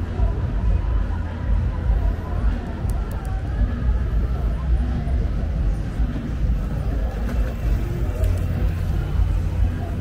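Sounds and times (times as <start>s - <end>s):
faint voices: 0.0s - 10.0s
low city rumble: 0.0s - 10.0s.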